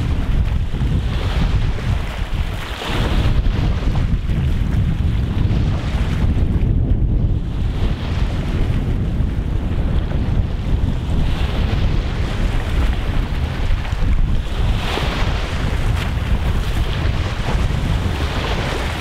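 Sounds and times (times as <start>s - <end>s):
waves lapping on rocky shore: 0.0s - 19.0s
wind buffeting microphone: 0.0s - 19.0s.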